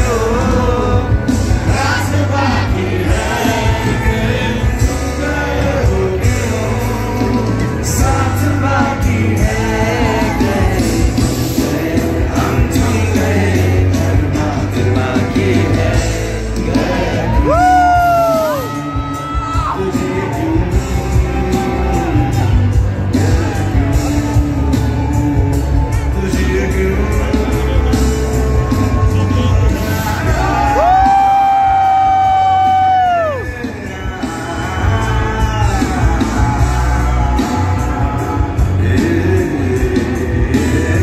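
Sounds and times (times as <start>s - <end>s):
band beat: 0.0s - 41.0s
crowd yelling and whooping: 0.0s - 41.0s
live music with singing: 0.0s - 41.0s.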